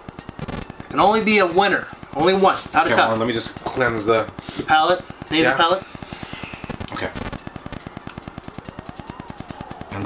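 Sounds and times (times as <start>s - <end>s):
microphone static crackling: 0.0s - 10.0s.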